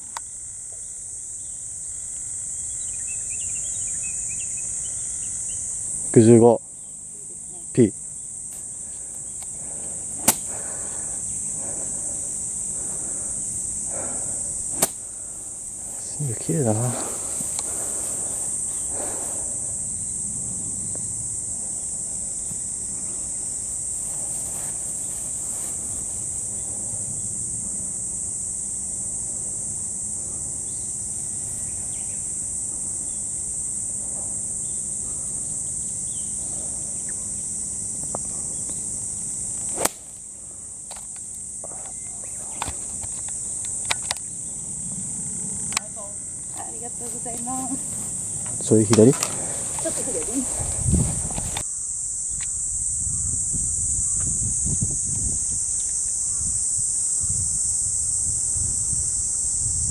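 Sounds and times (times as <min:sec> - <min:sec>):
insect chorus: 0:00.0 - 0:59.9
golf club striking ball: 0:10.2 - 0:10.5, 0:14.7 - 0:15.0, 0:39.6 - 0:40.2.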